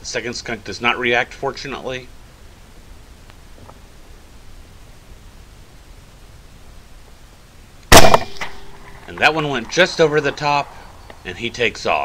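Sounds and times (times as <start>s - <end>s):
faint steady tone: 0.0s - 12.0s
suppressed rifle shot: 7.9s - 9.0s.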